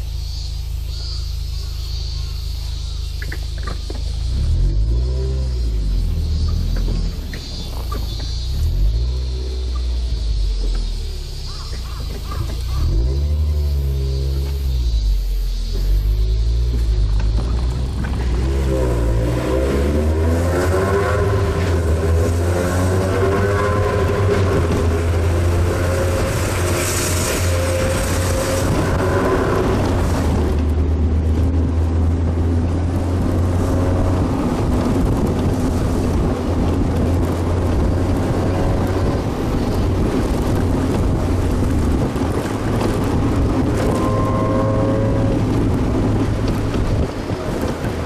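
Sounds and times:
car engine revving: 0:00.0 - 0:48.0
road noise echoing in tunnel: 0:00.0 - 0:48.0.

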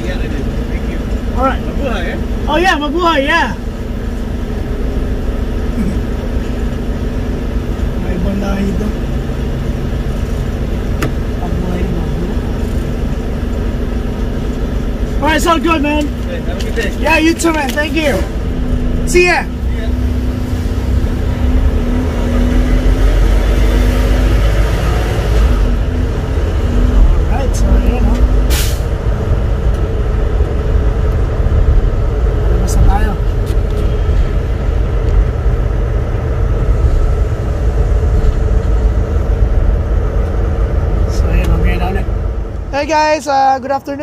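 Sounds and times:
truck engine rumbling: 0:00.0 - 0:44.0.

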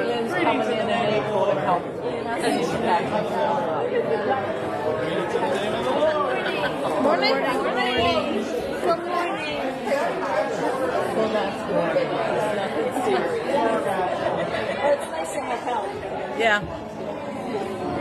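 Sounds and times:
many voices talking at once: 0:00.0 - 0:18.0.

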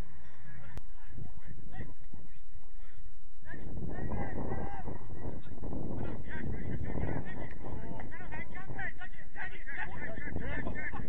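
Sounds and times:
wind buffeting microphone: 0:00.0 - 0:11.0.

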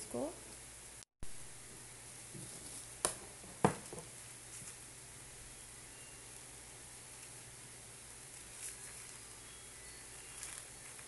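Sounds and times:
faint steady hiss: 0:00.0 - 0:11.0
cloth rustling: 0:08.2 - 0:09.4.

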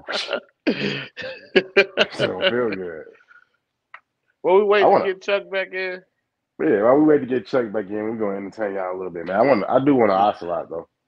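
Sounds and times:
men laughing: 0:00.0 - 0:03.0.

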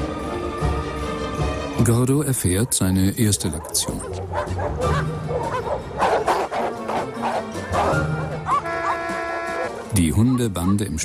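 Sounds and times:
background music: 0:00.0 - 0:11.0
dogs barking aggressively: 0:02.5 - 0:09.9.

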